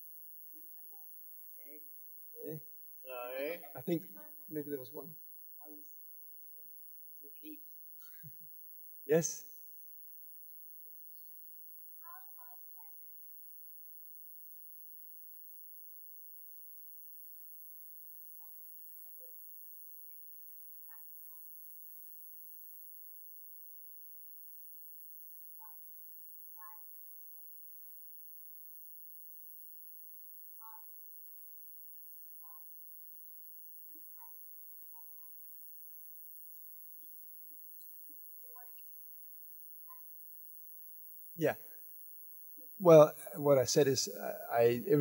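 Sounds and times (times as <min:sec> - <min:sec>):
distant voice speaking: 0:02.4 - 0:04.9, 0:42.8 - 0:45.0.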